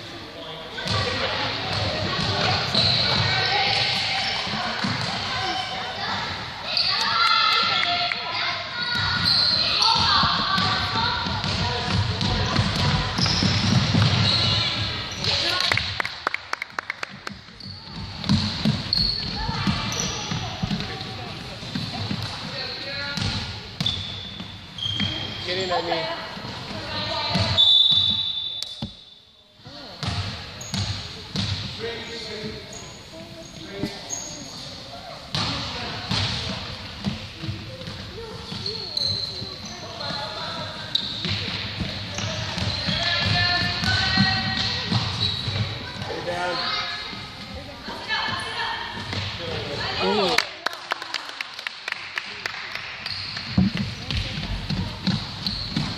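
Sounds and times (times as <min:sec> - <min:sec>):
sneakers squeaking: 0:00.8 - 0:16.0, 0:17.1 - 0:29.3, 0:30.0 - 0:50.0, 0:53.0 - 0:55.9
basketball bouncing: 0:09.9 - 0:14.6, 0:17.2 - 0:22.3, 0:23.1 - 0:24.0, 0:30.0 - 0:31.7, 0:41.2 - 0:46.1, 0:53.4 - 0:55.9
referee's whistle blast: 0:27.6 - 0:28.8.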